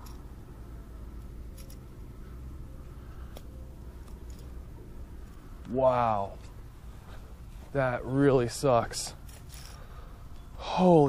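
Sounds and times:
steady low rumble: 0.0 - 10.7.

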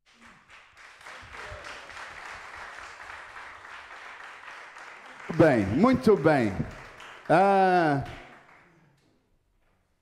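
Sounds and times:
man's voice trailing off: 7.3 - 8.2.

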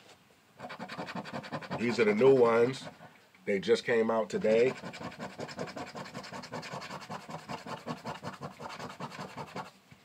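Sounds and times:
scratching lottery ticket coating: 0.6 - 3.1, 4.4 - 9.7.

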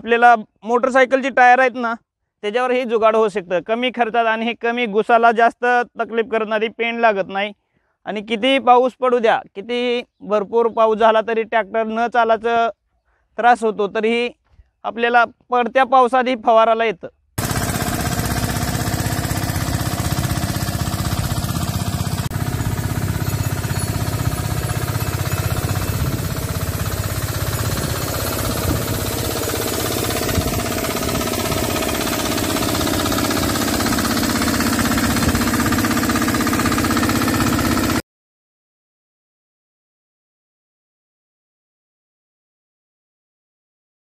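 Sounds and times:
blower air rushing: 17.4 - 38.0
small engine chugging: 17.4 - 38.0.

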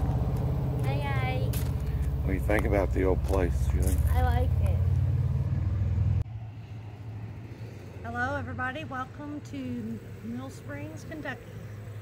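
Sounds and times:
pulsing engine-like rumble: 0.0 - 12.0.

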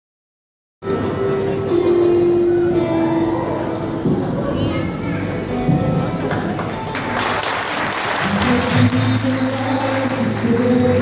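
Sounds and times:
audience applauding and cheering: 6.4 - 11.0.

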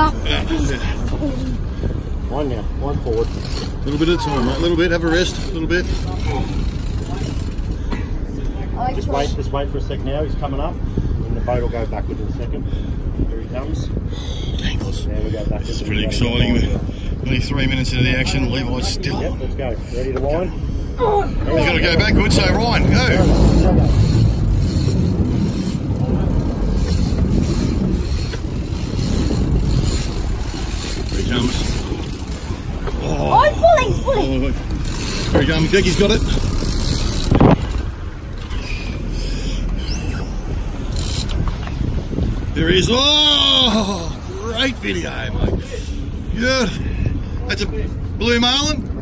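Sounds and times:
boat engines rumbling: 0.0 - 49.0
wind on microphone: 10.7 - 19.8, 20.4 - 48.2.

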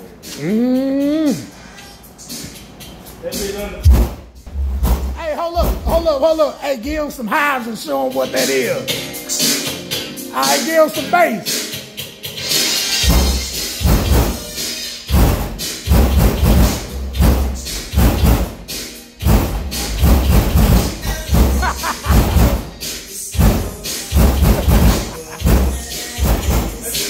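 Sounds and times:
deep bass hits: 3.8 - 6.3, 13.0 - 14.5, 15.1 - 22.8, 23.4 - 26.8
song through car subwoofers: 11.0 - 27.0.

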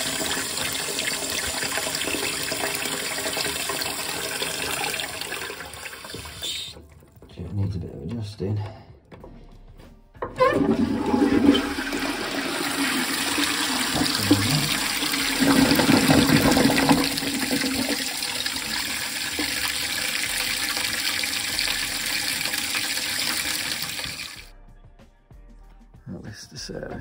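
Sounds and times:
cistern refilling water hiss: 0.0 - 6.8
toilet flushing: 0.0 - 7.2, 10.2 - 24.5.

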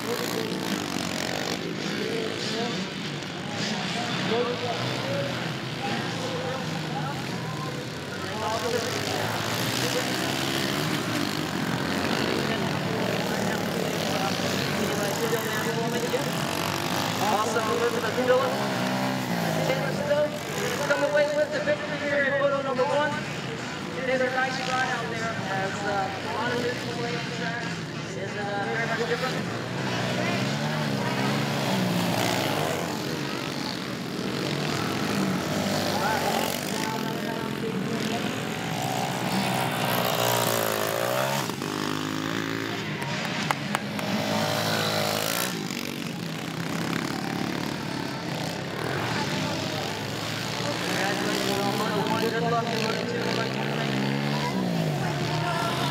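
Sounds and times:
dirt bike engines revving: 0.0 - 55.9.

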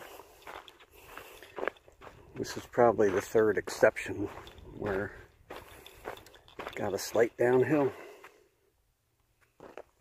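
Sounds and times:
footsteps crunching through snow: 0.0 - 8.4.

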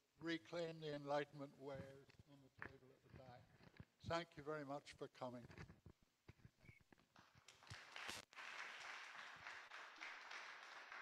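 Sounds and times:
faint applause: 7.5 - 11.0.

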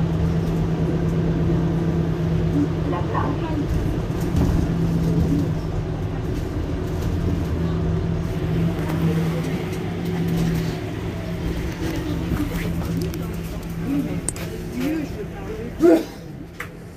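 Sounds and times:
bus engine idling: 0.0 - 16.9.

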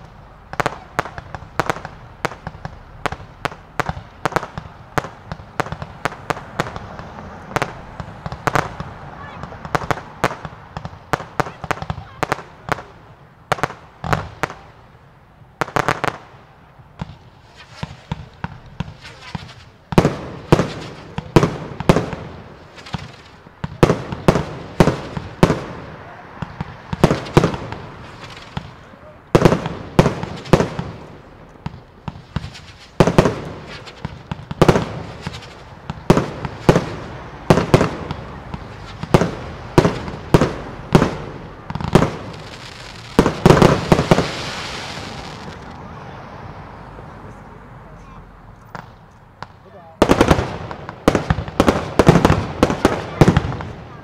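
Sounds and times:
fireworks bursting: 0.0 - 46.6, 48.6 - 54.0.

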